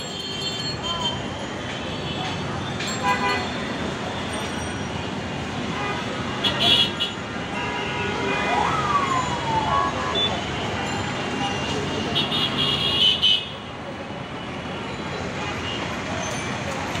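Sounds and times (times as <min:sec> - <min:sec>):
traffic engines and tyres: 0:00.0 - 0:17.0
siren-like wail: 0:08.0 - 0:10.9.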